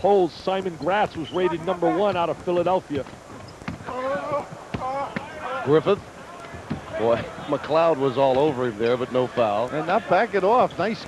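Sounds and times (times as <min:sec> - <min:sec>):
ball and feet knocking on floor: 0:02.0 - 0:05.3, 0:05.9 - 0:08.6.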